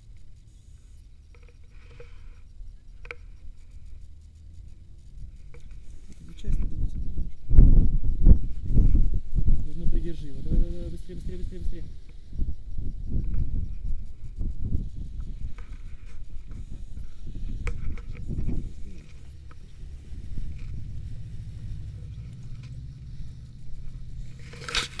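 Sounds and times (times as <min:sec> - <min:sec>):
wind buffeting microphone: 0:05.0 - 0:25.0.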